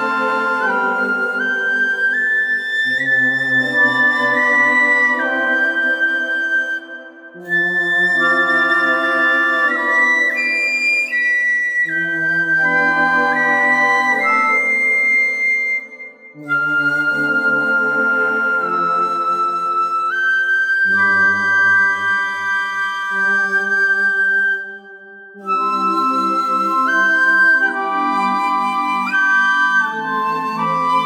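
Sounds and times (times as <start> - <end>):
bamboo flute melody: 0.0 - 31.0.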